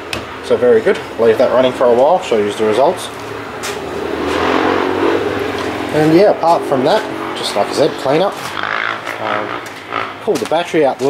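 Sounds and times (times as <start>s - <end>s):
compressor humming: 0.0s - 11.0s
rushing noise: 0.4s - 10.2s.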